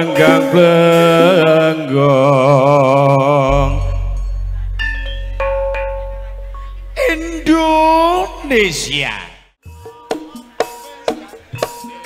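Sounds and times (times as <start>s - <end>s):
steady low hum: 3.5s - 8.9s
metallophone notes ringing: 3.5s - 9.0s.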